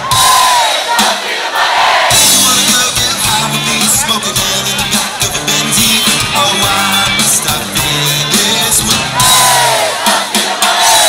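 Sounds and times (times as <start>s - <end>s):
crowd yelling: 0.0s - 11.0s
live rock band playing: 2.0s - 11.0s.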